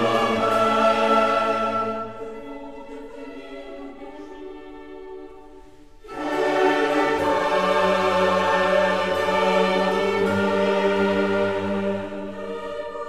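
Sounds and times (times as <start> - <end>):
orchestra with chorus: 0.0 - 13.0.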